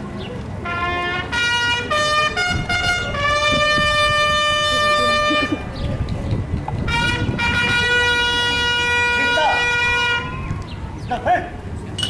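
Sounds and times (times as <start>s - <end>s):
bugles holding long notes: 0.6s - 5.7s, 6.8s - 10.6s.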